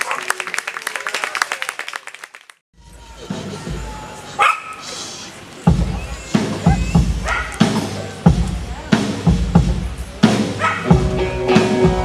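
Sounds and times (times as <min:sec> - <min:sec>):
live rock band: 0:05.7 - 0:12.0.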